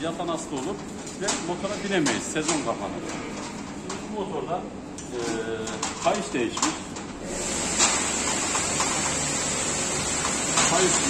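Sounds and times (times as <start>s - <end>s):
compressed air hissing: 7.2s - 10.7s.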